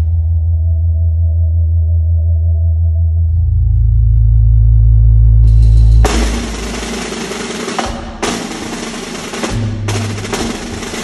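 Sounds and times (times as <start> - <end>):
deep electronic bass drone: 0.0 - 11.0.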